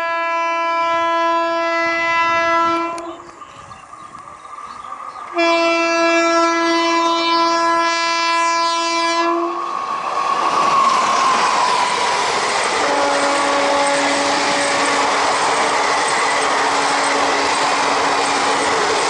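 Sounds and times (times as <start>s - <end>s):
locomotive horn blasts: 0.0s - 3.2s, 5.3s - 9.7s, 12.8s - 15.2s, 16.7s - 18.0s
train passing rushing: 0.0s - 19.0s.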